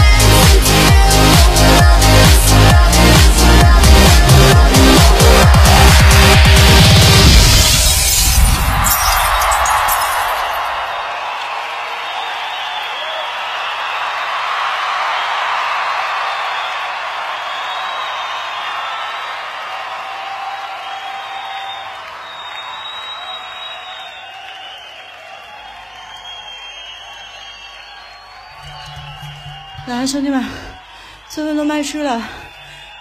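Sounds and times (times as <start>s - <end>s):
crowd cheering and applause: 0.0s - 33.0s.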